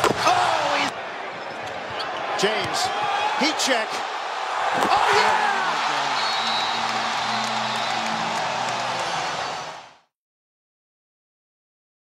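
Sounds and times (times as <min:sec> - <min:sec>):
crowd cheering: 0:00.0 - 0:10.1
music: 0:06.3 - 0:10.1.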